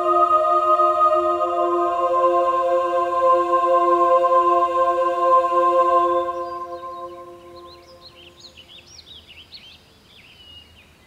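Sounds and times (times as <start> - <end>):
held music chord: 0.0 - 8.4
songbirds chirping: 0.0 - 11.0.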